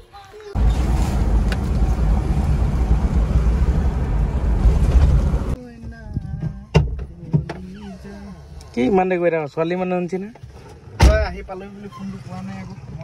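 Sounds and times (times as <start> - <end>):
car road and engine noise: 0.5 - 5.6.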